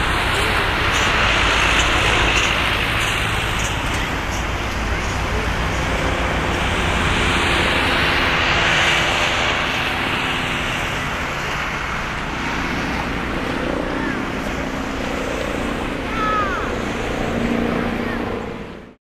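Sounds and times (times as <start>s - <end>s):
jet engines roaring at takeoff: 0.0s - 19.0s.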